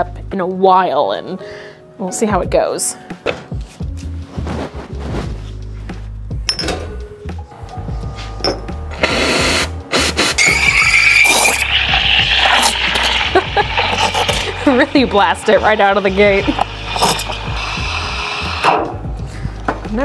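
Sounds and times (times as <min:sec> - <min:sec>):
steam wand hissing with whistle: 0:09.0 - 0:14.5, 0:15.6 - 0:18.7.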